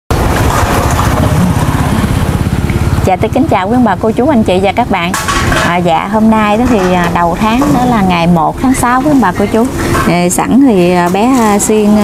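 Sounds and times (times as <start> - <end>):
small engine running: 0.1 - 5.6, 8.8 - 10.2.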